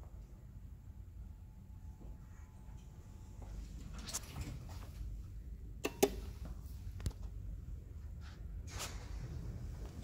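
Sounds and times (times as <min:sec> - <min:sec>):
low steady hum: 0:00.0 - 0:10.0
elevator button clicking: 0:05.8 - 0:06.3.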